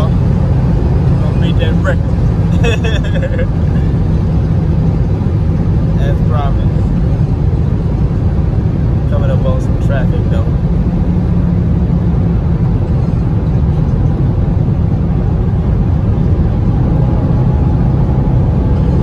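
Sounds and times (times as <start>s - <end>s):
car engine rumble: 0.0s - 19.0s.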